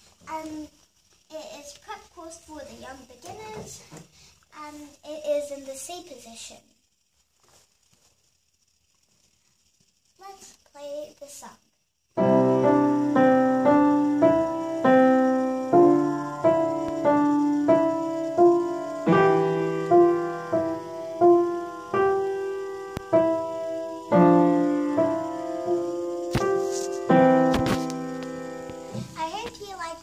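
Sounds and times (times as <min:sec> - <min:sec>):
slow piano piece: 0:12.2 - 0:29.2.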